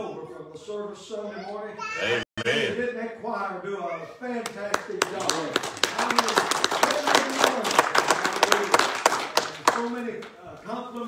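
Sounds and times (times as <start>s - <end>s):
hands clapping in applause: 4.4s - 10.4s.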